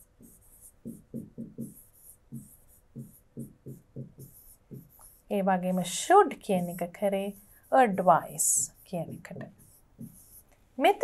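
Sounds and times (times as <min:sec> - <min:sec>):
pen tapping and scratching on screen: 0:00.0 - 0:10.6.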